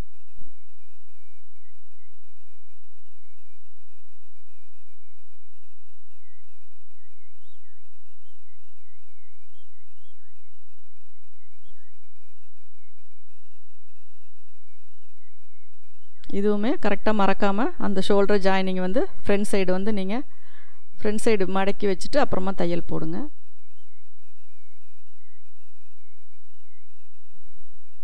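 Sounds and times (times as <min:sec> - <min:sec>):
high-pitched wavering whine: 0:00.0 - 0:28.0.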